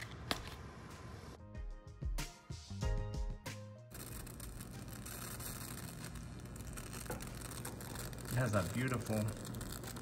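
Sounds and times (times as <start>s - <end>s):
music: 0.9s - 6.2s
plasma flame hiss and hum: 3.9s - 10.0s.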